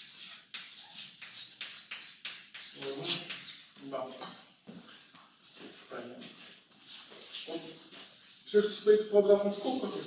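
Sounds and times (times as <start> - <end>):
chalk scraping on blackboard: 0.0 - 4.3
person speaking: 2.7 - 4.5, 7.4 - 10.0.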